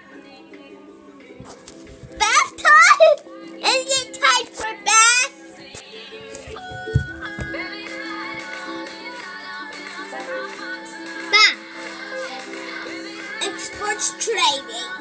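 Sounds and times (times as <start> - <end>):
background music with held notes: 0.0 - 15.0
short thump: 6.2 - 7.7
child vocalizing high-pitched: 11.4 - 11.6.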